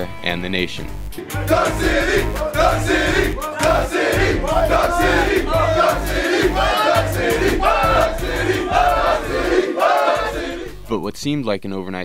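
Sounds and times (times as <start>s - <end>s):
music with bass beat: 0.9s - 10.9s
players shouting and chanting: 1.3s - 10.8s.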